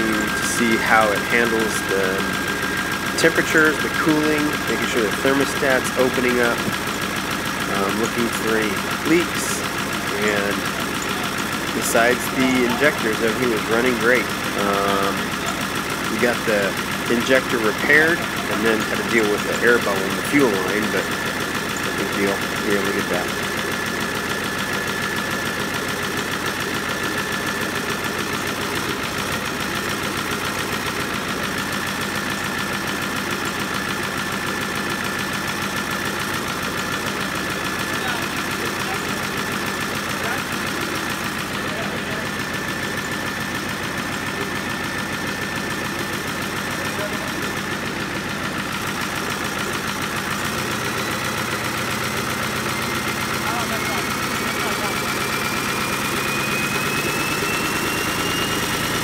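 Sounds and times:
diesel engine clattering: 0.0s - 59.0s
turbo whine: 0.0s - 59.0s.

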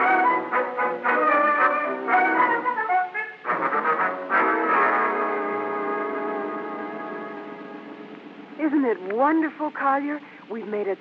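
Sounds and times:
orchestral brass chord: 0.0s - 8.6s.

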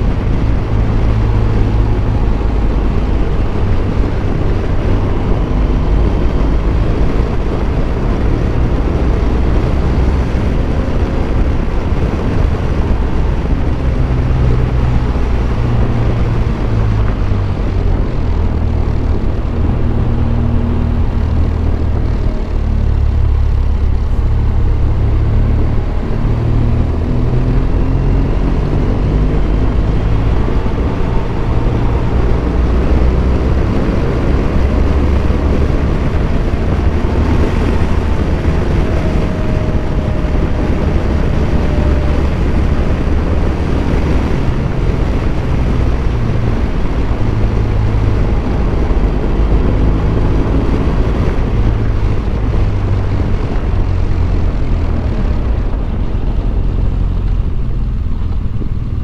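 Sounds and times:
motorcycle engine running: 0.0s - 59.0s
wind rumble on microphone: 0.0s - 59.0s.

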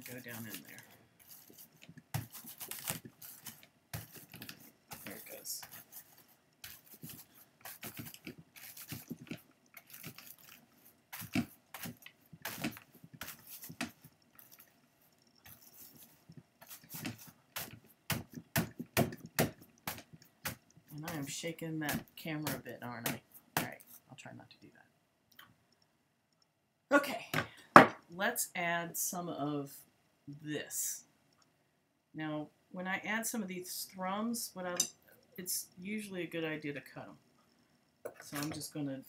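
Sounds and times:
brush scratching on carding cloth: 0.0s - 14.7s, 15.4s - 18.5s.

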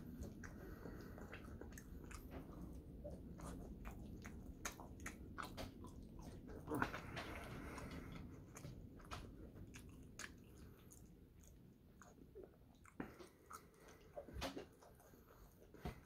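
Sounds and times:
person chewing fries: 0.0s - 16.0s.

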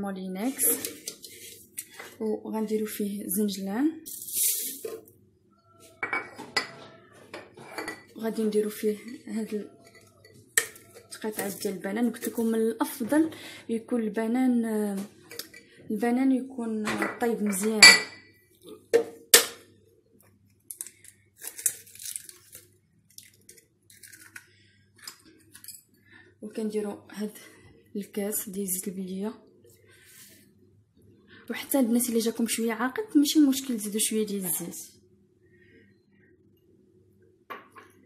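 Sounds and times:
bowl and jar knocking on countertop: 37.5s - 38.0s.

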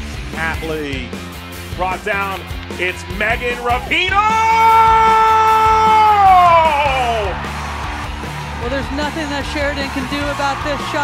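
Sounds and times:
background music: 0.0s - 11.0s
commentator shouting: 1.8s - 7.4s.

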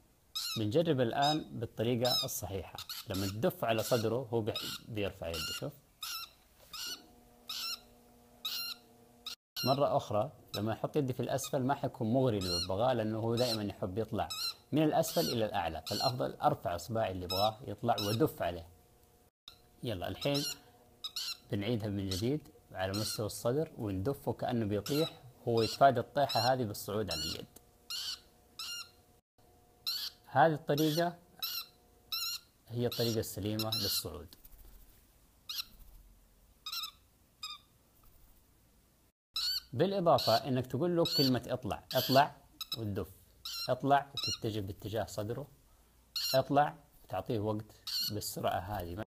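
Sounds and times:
parrot giving high-pitched calls: 0.3s - 0.6s, 1.2s - 9.8s, 12.4s - 12.7s, 14.3s - 16.2s, 17.3s - 18.2s, 20.2s - 21.5s, 22.9s - 23.2s, 24.8s - 29.0s, 29.8s - 34.0s, 35.5s - 35.8s, 36.6s - 37.7s, 39.4s - 42.8s, 43.4s - 44.4s, 46.2s - 46.5s, 47.8s - 48.2s.

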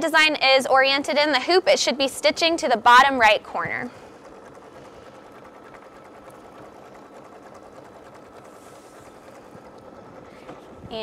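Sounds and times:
embroidery machine stitching: 2.2s - 11.0s.

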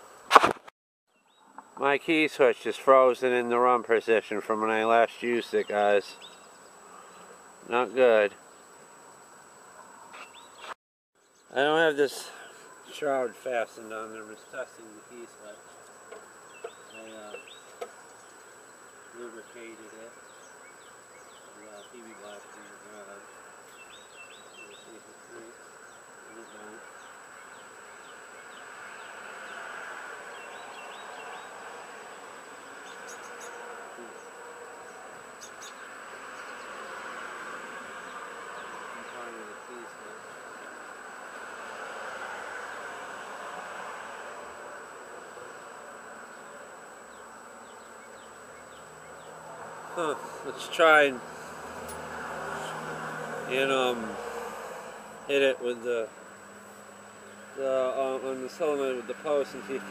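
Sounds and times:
insect buzzing: 1.2s - 59.9s.

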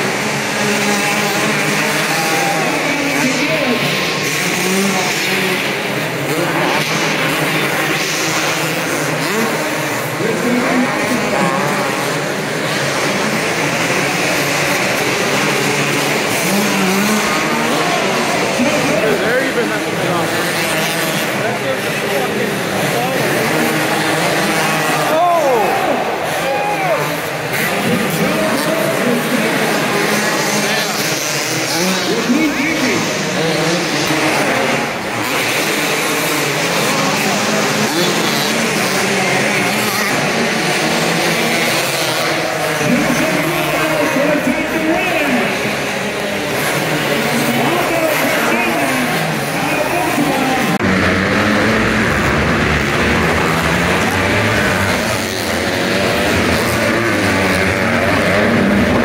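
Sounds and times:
crowd voices: 0.0s - 59.0s
motocross engines revving: 0.0s - 59.0s.

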